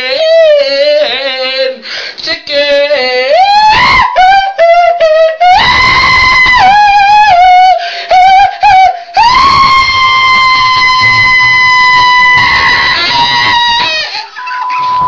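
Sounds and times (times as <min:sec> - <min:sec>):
man singing in falsetto: 0:00.0 - 0:15.0.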